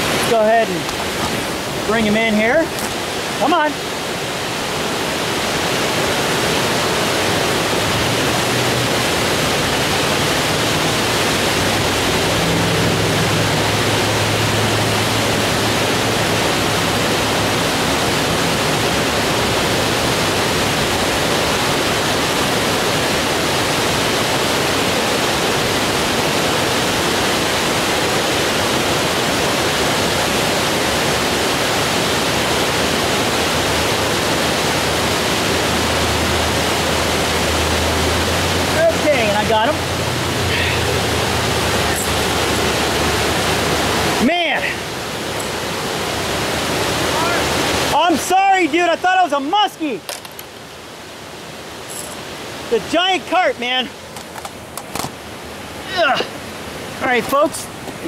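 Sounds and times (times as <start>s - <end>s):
water rushing over a dam: 0.0s - 58.0s.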